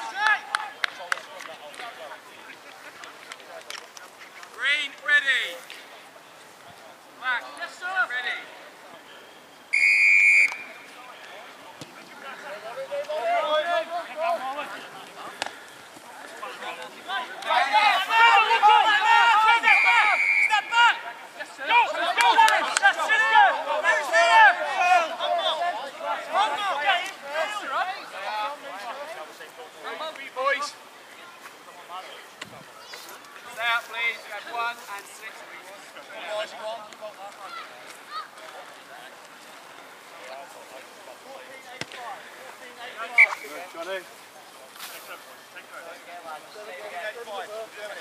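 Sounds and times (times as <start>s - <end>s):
referee's whistle blast: 9.7s - 10.8s, 19.6s - 20.7s, 43.2s - 43.5s
men shouting: 17.5s - 27.8s.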